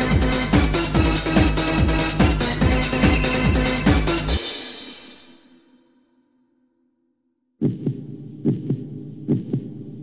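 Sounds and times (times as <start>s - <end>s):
techno loop with bass and drums: 0.0s - 4.3s.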